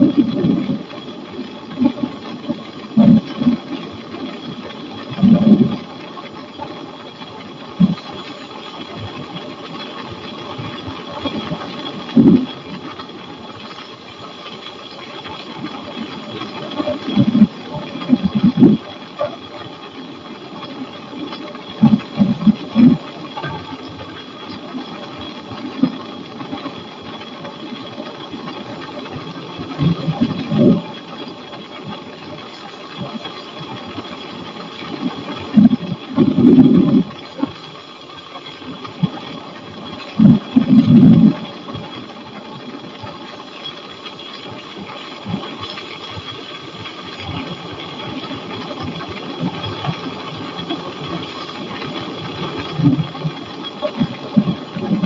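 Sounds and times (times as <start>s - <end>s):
high whine: 0.0s - 55.0s
wind rumble on microphone: 0.0s - 55.0s.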